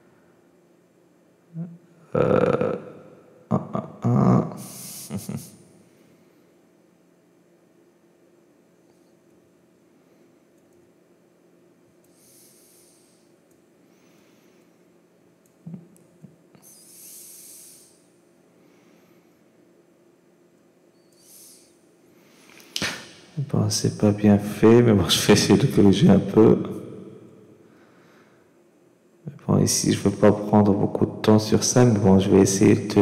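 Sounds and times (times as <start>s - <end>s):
man humming: 1.5s - 5.6s, 15.6s - 18.0s
breathy hiss: 12.0s - 14.8s, 16.6s - 19.5s, 21.1s - 23.5s.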